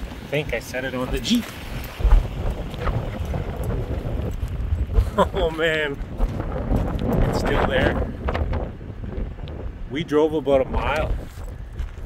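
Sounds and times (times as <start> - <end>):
footsteps crunching on gravel: 0.0 - 7.9, 10.8 - 12.0
wind buffeting microphone: 0.0 - 12.0.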